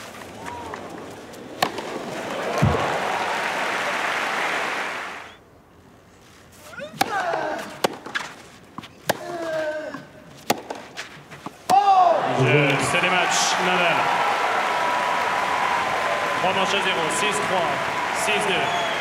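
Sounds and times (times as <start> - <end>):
racket striking ball: 1.6 - 2.0, 7.0 - 8.3, 10.4 - 11.8
crowd applause: 1.8 - 5.3, 12.2 - 19.0.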